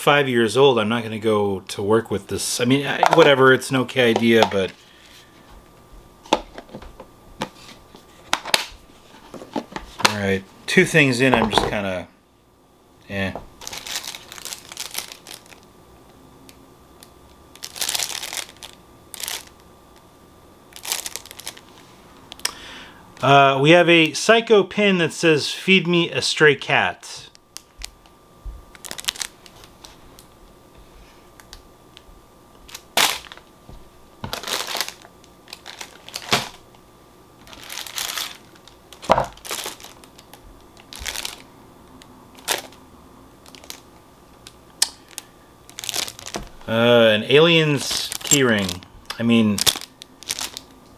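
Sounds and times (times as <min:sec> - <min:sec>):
plastic packaging crinkling: 0:13.6 - 0:15.7, 0:17.0 - 0:19.6, 0:20.7 - 0:21.8, 0:28.7 - 0:30.4, 0:32.6 - 0:33.5, 0:34.2 - 0:36.8, 0:37.4 - 0:42.8, 0:43.4 - 0:50.8.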